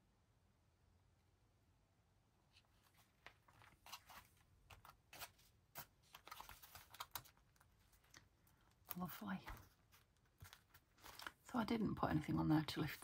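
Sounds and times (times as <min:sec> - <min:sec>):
paper rustling: 0:02.5 - 0:11.5.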